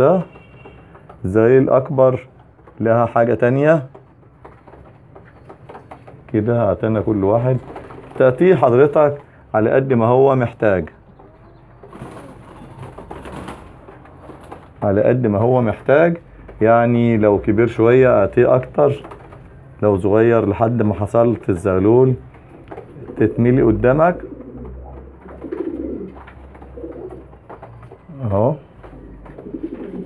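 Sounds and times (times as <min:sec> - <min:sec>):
pigeons cooing: 0:22.4 - 0:27.9, 0:28.7 - 0:30.0.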